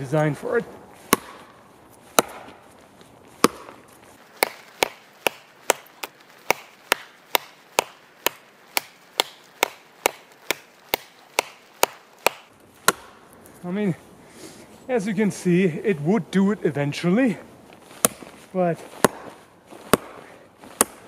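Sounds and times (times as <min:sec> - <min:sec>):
sword chopping into wood: 0:01.1 - 0:02.6, 0:03.4 - 0:03.8, 0:04.4 - 0:13.2, 0:18.0 - 0:18.3, 0:18.9 - 0:21.0.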